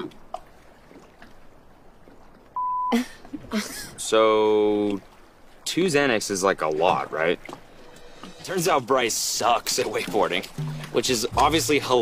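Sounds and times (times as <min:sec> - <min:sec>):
high-pitched censor bleep: 0:02.6 - 0:03.0.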